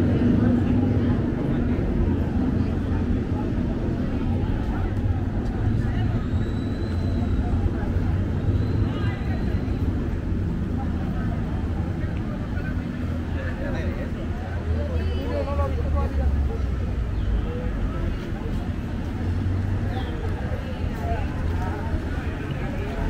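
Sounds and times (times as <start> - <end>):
low engine rumble: 0.0 - 23.0
people talking: 0.0 - 23.0.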